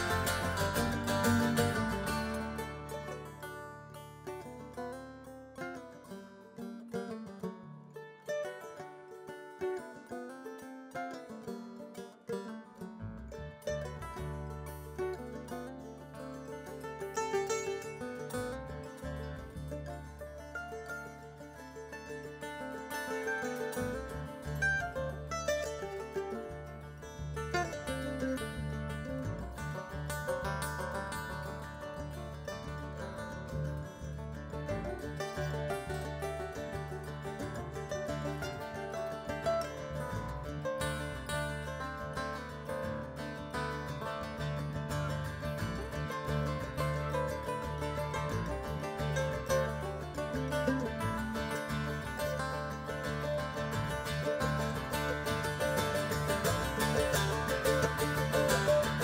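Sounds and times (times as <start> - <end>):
upright bass: 0.0 - 8.0, 11.2 - 59.0
acoustic guitar: 0.0 - 59.0
banjo: 0.0 - 59.0
mandolin: 0.0 - 59.0.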